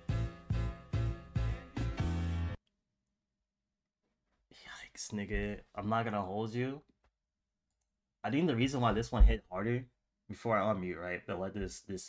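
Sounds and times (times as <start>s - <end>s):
man whispering: 4.5s - 5.8s.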